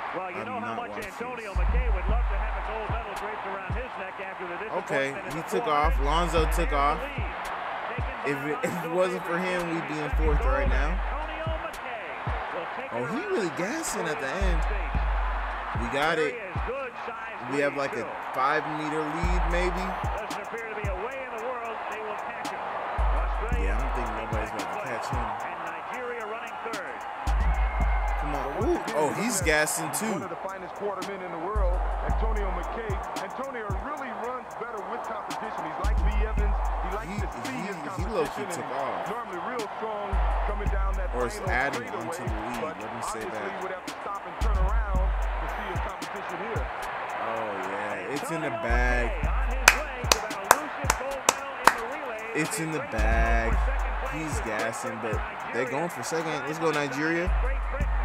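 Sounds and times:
man's voice: 0.0s - 7.4s, 8.0s - 15.1s, 15.7s - 58.0s
stadium crowd roar: 0.0s - 58.0s
person speaking: 0.4s - 1.2s, 13.0s - 14.8s, 28.2s - 30.3s, 52.4s - 53.6s
heavy low thumps: 14.4s - 15.8s, 31.6s - 32.9s, 35.9s - 36.9s, 40.2s - 41.2s.

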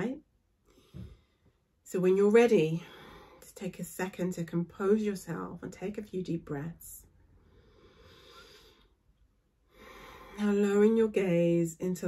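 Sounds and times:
woman breathing slowly: 0.6s - 1.6s, 2.8s - 3.5s, 7.2s - 10.4s.

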